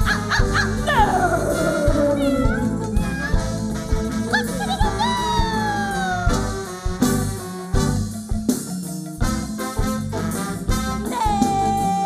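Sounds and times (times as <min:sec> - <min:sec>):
live calypso band: 0:00.0 - 0:12.0
steady drum beat: 0:00.0 - 0:12.0.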